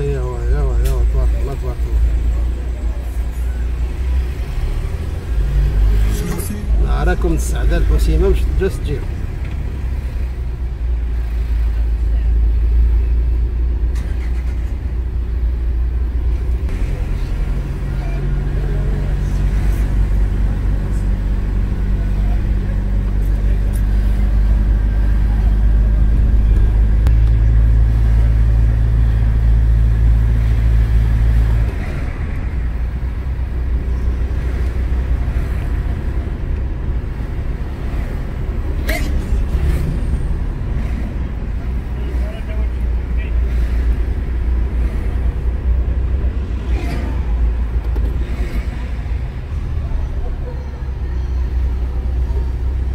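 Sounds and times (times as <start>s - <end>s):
car engine and road noise: 0.0s - 52.9s
steady engine hum: 0.0s - 52.9s.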